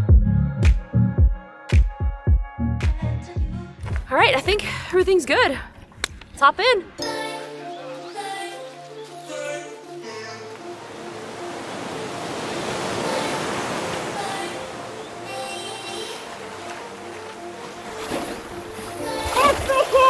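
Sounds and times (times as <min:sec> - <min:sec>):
background music: 0:00.0 - 0:20.0
water splashing and surf: 0:06.6 - 0:20.0
person exclaiming loudly: 0:19.4 - 0:20.0.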